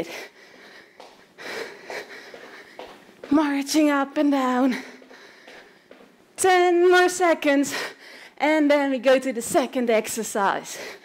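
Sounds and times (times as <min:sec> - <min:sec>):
woman breathing hard: 0:00.0 - 0:03.3, 0:04.7 - 0:06.2, 0:07.7 - 0:08.4, 0:10.7 - 0:11.0.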